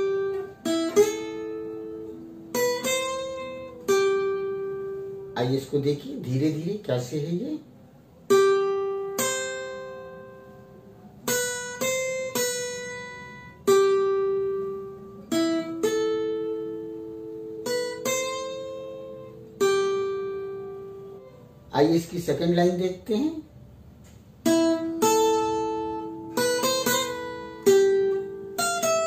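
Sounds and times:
acoustic guitar picked notes: 0:00.0 - 0:29.0.

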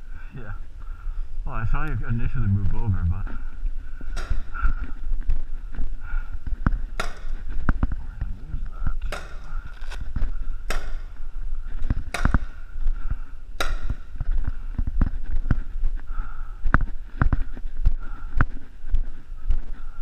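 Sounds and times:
low thuds of movement: 0:00.6 - 0:20.0
paintball markers firing: 0:09.0 - 0:10.1, 0:10.7 - 0:11.2, 0:13.6 - 0:14.1.

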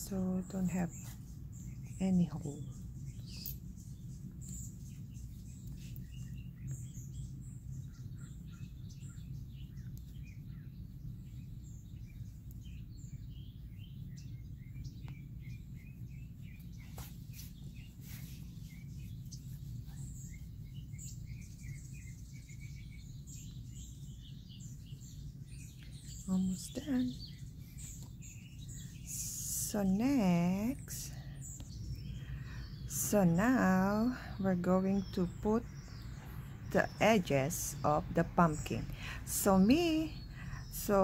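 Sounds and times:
faint bird chirps: 0:00.0 - 0:41.0
low background hum: 0:00.0 - 0:41.0.

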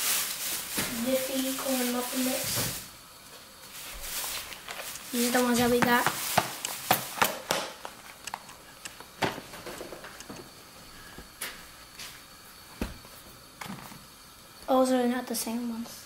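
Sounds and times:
light knocks in a kitchen: 0:12.8 - 0:13.9.

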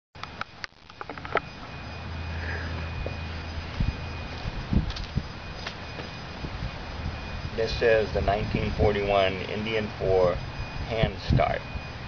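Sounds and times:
low steady hum: 0:00.2 - 0:12.0
footsteps on pavement: 0:02.7 - 0:06.2.

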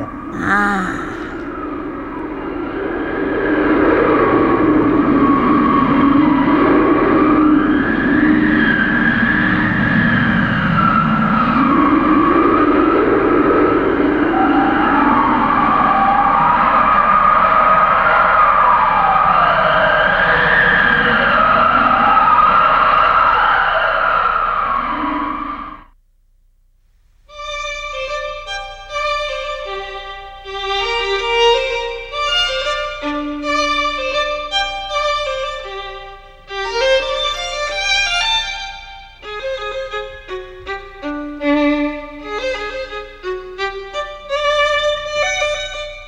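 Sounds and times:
howling blizzard wind: 0:01.4 - 0:25.9.

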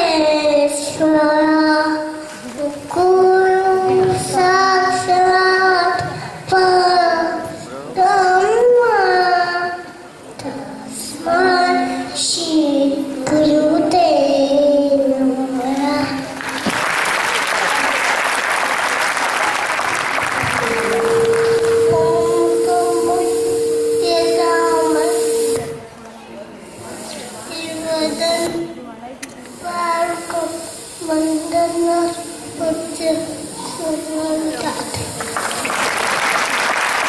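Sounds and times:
steady held tone: 0:18.3 - 0:26.0
voices over microphone and pa: 0:18.8 - 0:35.6.

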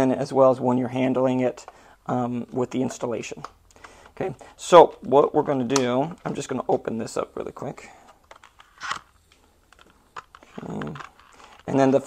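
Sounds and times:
packaging crinkle: 0:08.3 - 0:11.8.

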